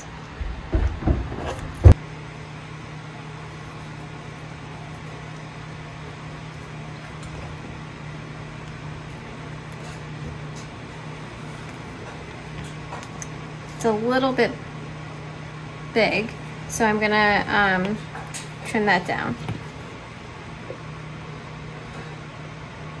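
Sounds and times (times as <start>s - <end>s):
steady low hum: 0.0s - 23.0s
knocks on a work surface: 0.7s - 2.0s.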